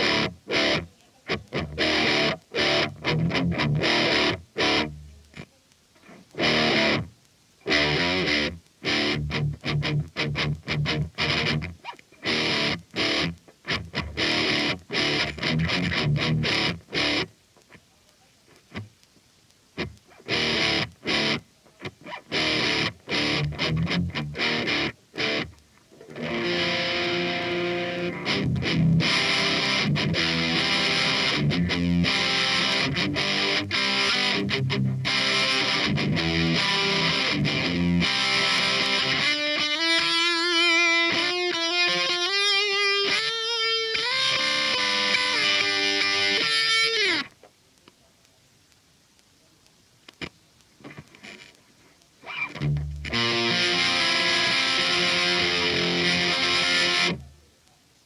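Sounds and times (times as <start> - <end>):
distorted electric guitar: 0.0 - 17.8, 19.7 - 47.5, 50.1 - 57.4.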